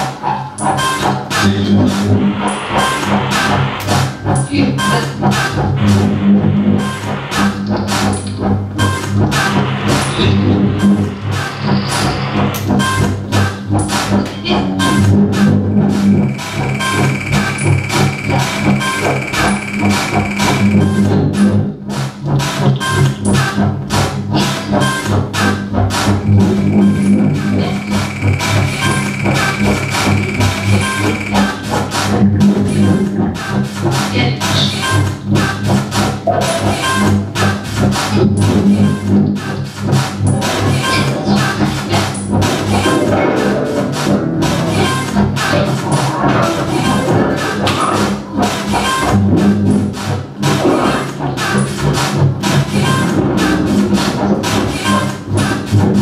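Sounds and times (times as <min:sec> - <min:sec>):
rapid electronic clicks: 0:13.8 - 0:21.5, 0:25.9 - 0:32.1
low drone: 0:15.2 - 0:21.6, 0:24.9 - 0:32.4
high held tone: 0:16.0 - 0:21.2, 0:26.2 - 0:31.8.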